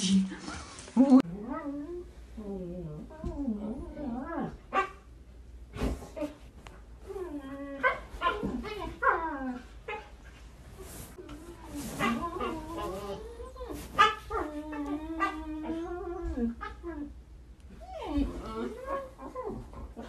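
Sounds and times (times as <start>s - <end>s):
dogs whining and yowling: 11.7s - 20.0s.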